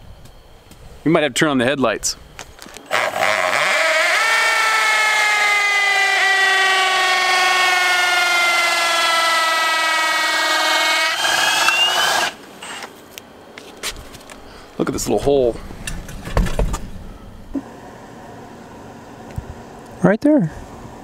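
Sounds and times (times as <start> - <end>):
cordless drill motor whine: 2.8 - 12.9.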